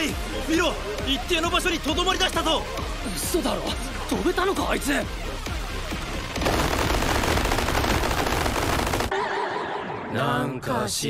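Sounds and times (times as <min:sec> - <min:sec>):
cartoon rapid-fire rattle: 0:06.4 - 0:09.1.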